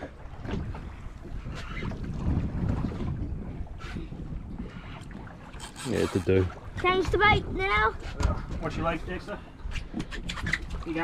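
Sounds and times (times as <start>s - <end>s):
water slapping against boat hull: 0.0s - 9.0s
wind buffeting microphone: 0.0s - 11.0s.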